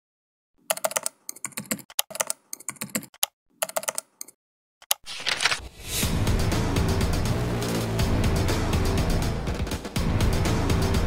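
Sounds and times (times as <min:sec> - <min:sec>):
keyboard typing: 0:00.6 - 0:05.6.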